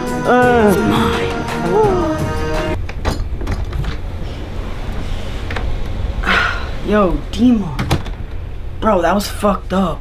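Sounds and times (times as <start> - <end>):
steady low rumble: 0.5 - 10.0.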